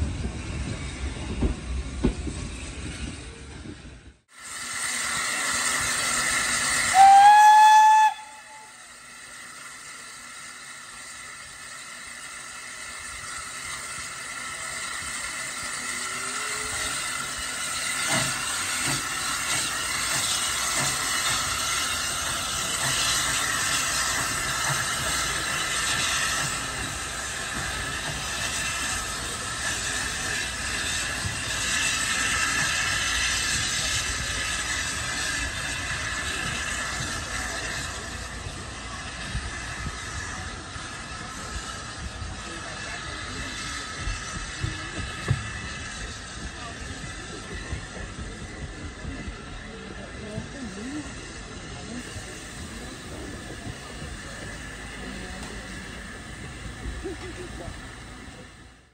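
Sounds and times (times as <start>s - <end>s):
steam hissing: 0.0s - 58.9s
steam locomotive pulling away: 0.0s - 58.9s.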